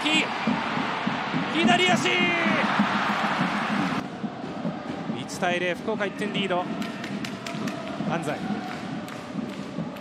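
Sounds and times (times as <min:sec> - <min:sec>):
stadium crowd roaring: 0:00.0 - 0:09.9.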